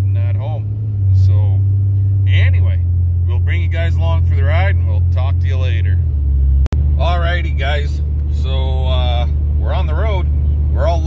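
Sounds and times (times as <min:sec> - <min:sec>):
man talking: 0:00.0 - 0:01.6, 0:02.2 - 0:06.0, 0:07.0 - 0:11.0
truck engine droning: 0:00.0 - 0:11.0.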